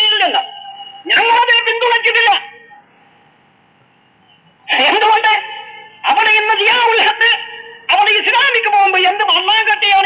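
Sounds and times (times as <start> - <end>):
faint recording hiss: 0.0 - 10.0.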